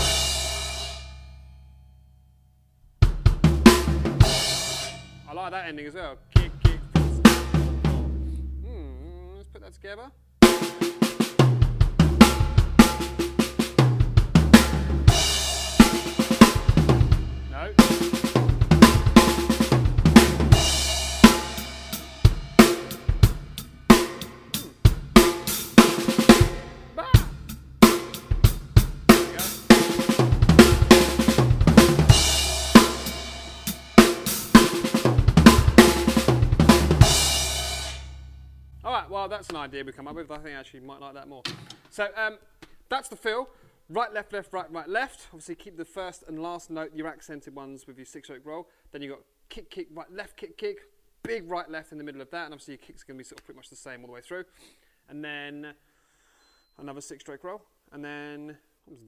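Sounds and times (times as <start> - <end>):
double kick-drum strokes: 0.0 - 1.1, 3.0 - 5.4, 6.3 - 8.7, 10.4 - 38.2
acoustic drum kit groove: 0.0 - 1.2, 2.9 - 9.8, 10.4 - 39.7
snare drum rolls: 29.1 - 33.2, 34.0 - 37.1.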